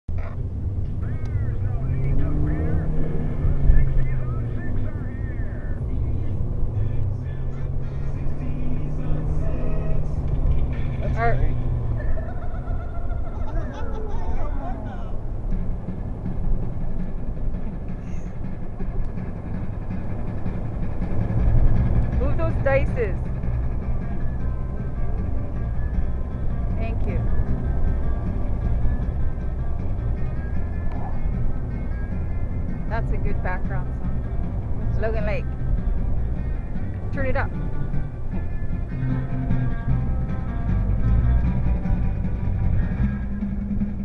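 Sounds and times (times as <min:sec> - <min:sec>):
car engine and tyre rumble: 0:00.0 - 0:44.0
song with vocals: 0:01.0 - 0:15.4, 0:17.7 - 0:44.0.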